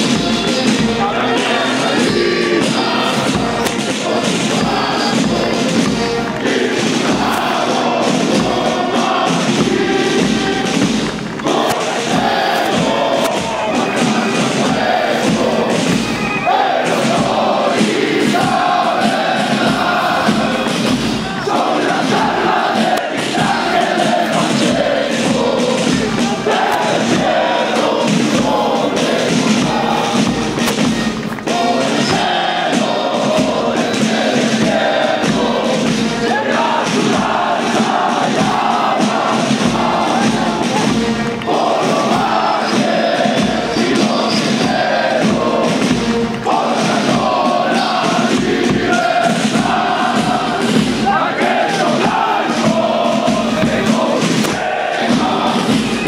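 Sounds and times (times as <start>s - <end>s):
soldiers chanting in unison: 0.0s - 56.0s.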